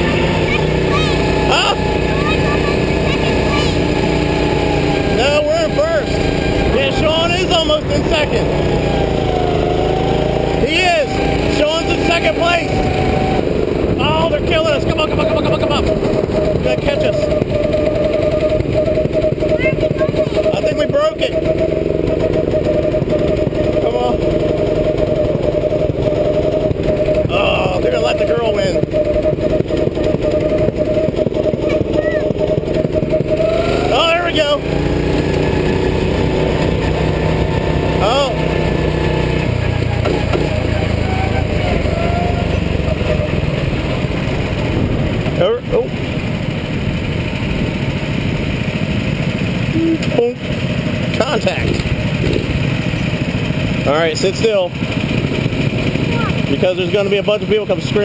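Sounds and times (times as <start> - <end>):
go-kart engine running: 0.0 - 58.0.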